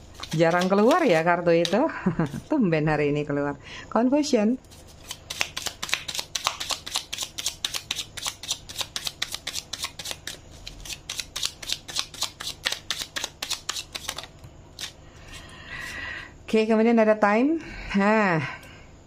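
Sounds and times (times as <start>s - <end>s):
cards being shuffled: 0.0s - 2.5s, 4.7s - 15.4s.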